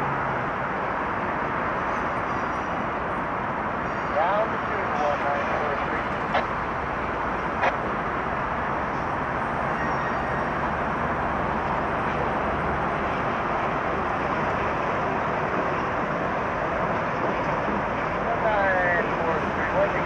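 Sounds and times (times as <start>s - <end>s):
freeway traffic roar: 0.0s - 20.0s
slow-moving passenger train: 0.0s - 20.0s.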